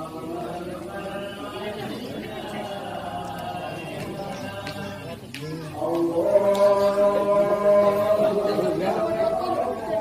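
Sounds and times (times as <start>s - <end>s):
man chanting: 0.0s - 10.0s
people talking: 0.0s - 10.0s.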